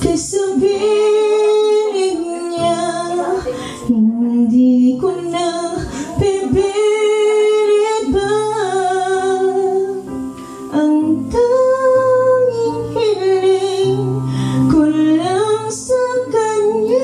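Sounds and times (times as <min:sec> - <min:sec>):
instrumental backing with guitar: 0:00.0 - 0:17.0
woman singing: 0:00.0 - 0:17.0.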